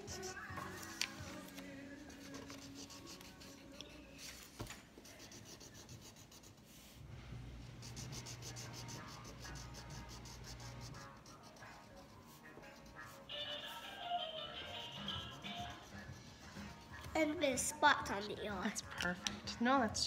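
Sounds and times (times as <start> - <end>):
marker scratching on paper: 0.0 - 1.2, 2.0 - 7.0, 7.8 - 13.3, 14.6 - 17.3.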